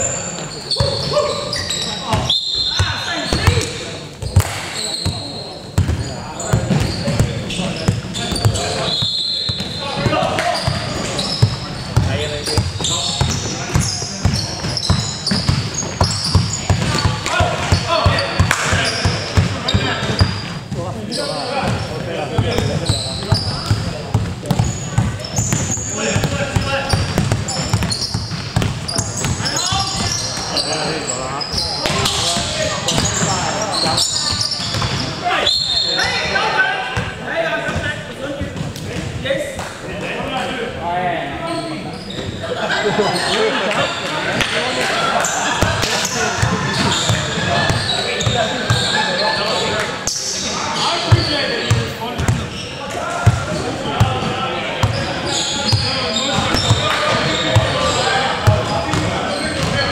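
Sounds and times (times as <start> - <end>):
sneaker squeaks: 0.0 - 36.4, 41.4 - 44.4, 45.2 - 59.9
players' voices and calls: 0.0 - 59.9
basketball bouncing on wood floor: 2.8 - 4.6, 5.8 - 8.6, 9.6 - 20.4, 22.4 - 30.2, 34.3 - 35.0, 58.4 - 59.8.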